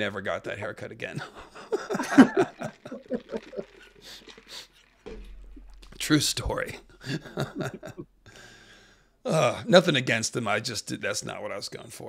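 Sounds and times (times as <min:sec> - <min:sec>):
faint hissy breaths: 0:04.0 - 0:04.9, 0:08.2 - 0:09.2
man chuckling softly: 0:07.0 - 0:08.1.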